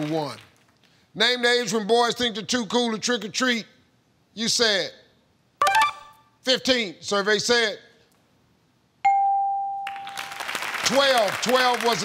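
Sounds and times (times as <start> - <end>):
bell-like ding: 9.1 - 10.1.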